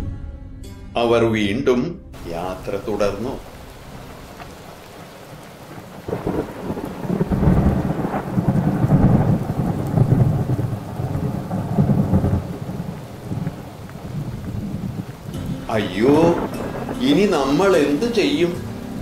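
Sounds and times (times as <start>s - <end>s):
rain: 2.2s - 19.0s
thunder rumbling: 2.2s - 19.0s.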